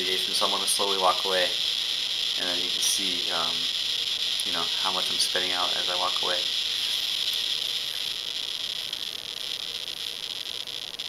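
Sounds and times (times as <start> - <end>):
geiger counter clicking: 0.0 - 11.0.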